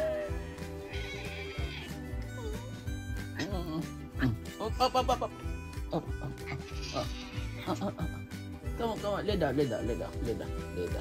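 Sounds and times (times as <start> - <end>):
background music: 0.0 - 11.0
cat meowing: 0.8 - 2.6, 6.4 - 7.8.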